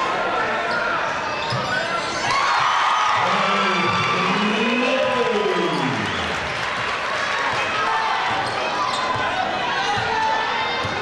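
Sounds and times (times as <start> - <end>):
crowd chatter: 0.0 - 11.0
sneakers squeaking on floor: 0.6 - 2.2, 8.3 - 11.0.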